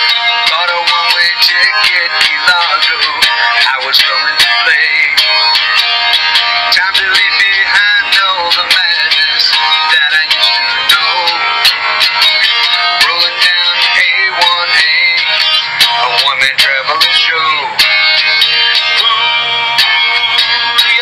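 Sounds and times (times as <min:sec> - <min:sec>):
rock song with guitar: 0:00.0 - 0:21.0.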